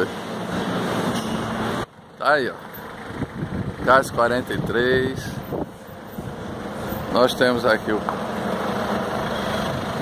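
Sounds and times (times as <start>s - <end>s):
street background rumble: 0.0s - 10.0s
speech: 2.2s - 2.6s, 3.8s - 5.4s, 7.1s - 8.1s.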